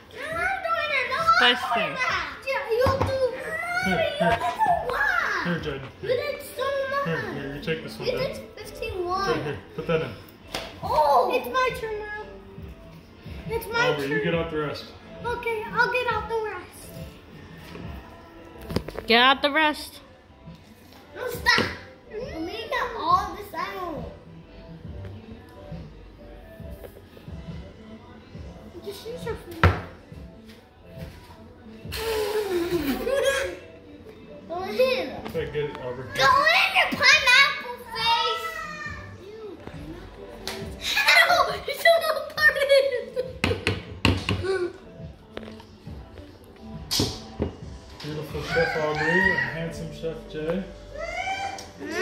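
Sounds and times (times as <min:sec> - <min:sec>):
children's voices: 0:00.0 - 0:05.4, 0:36.1 - 0:39.7, 0:40.8 - 0:43.3
faint background music: 0:00.0 - 0:52.0.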